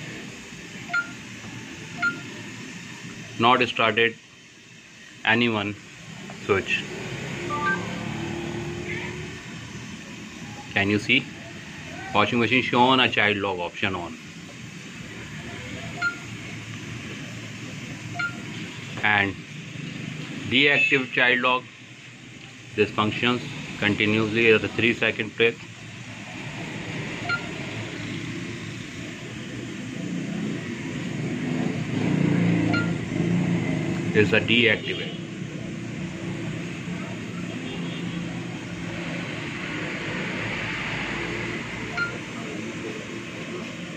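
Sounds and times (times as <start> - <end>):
washing machine running: 0.0 - 20.8, 21.7 - 34.2, 35.3 - 43.9.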